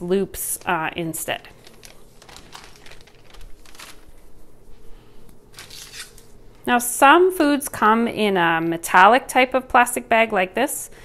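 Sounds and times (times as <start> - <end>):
plastic bags crinkling: 1.3 - 4.4, 5.5 - 6.4.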